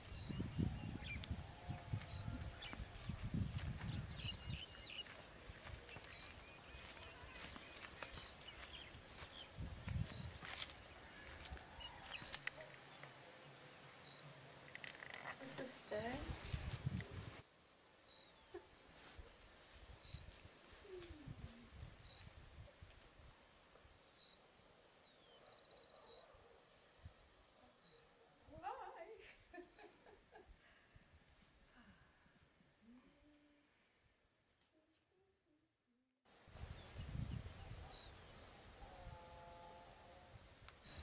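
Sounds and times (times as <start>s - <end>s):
wind gusts on microphone: 0.0s - 6.8s, 8.2s - 12.3s, 16.0s - 17.4s, 36.5s - 39.2s.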